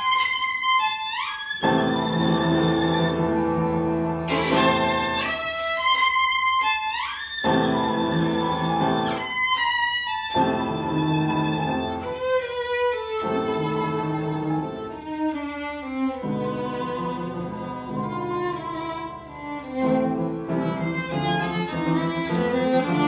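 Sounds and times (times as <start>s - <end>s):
solo violin melody: 0.0s - 23.0s
piano chords: 1.6s - 6.3s, 7.4s - 23.0s.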